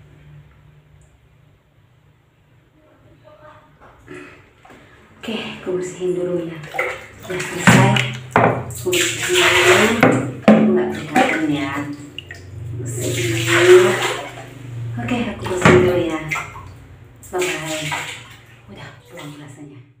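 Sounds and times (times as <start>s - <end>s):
woman talking: 5.2s - 14.2s, 14.9s - 16.5s, 17.2s - 18.1s, 18.7s - 20.0s
water splashing and pouring: 6.6s - 19.5s.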